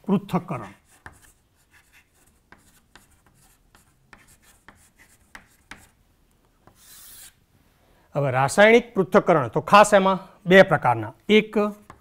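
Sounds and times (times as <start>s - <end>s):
chalk writing on chalkboard: 0.7s - 6.0s, 6.6s - 7.4s, 11.8s - 12.0s.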